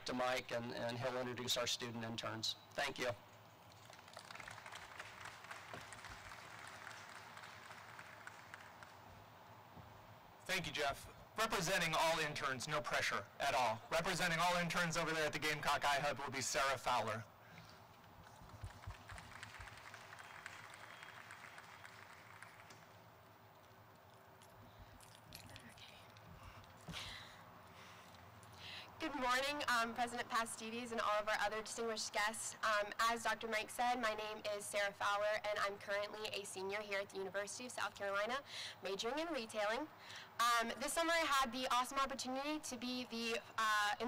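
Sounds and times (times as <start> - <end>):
faint outdoor background noise: 0.0 - 44.0
light applause: 3.7 - 9.2, 18.2 - 23.2.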